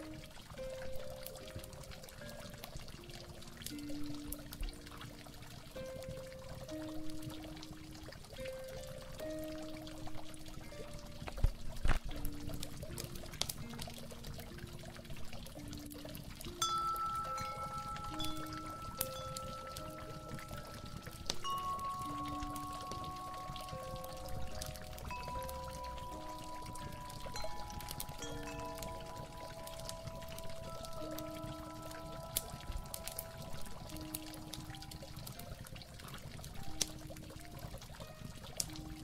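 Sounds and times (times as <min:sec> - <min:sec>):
mellow harp music: 0:00.0 - 0:39.0
water pouring and trickling: 0:00.0 - 0:39.0.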